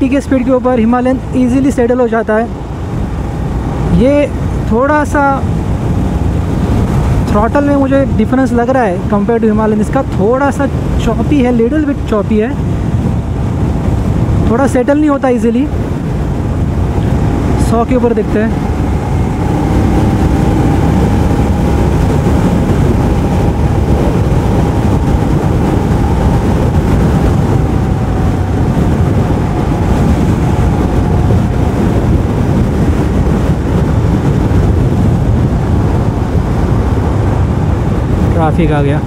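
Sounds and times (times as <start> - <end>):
wind rush on microphone: 0.0 - 39.0
motorcycle engine cruising: 2.4 - 8.2, 15.7 - 39.0.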